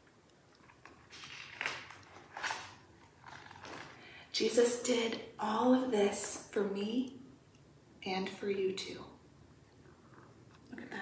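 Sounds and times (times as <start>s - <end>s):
book page turning: 0.6s - 4.1s.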